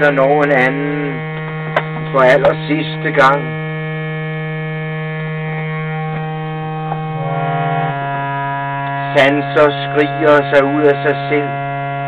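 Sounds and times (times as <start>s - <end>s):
harmonium drone: 0.0s - 12.0s.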